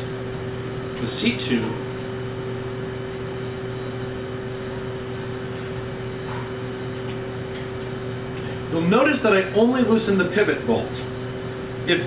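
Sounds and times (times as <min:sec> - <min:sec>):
mechanical background hum: 0:00.0 - 0:12.0.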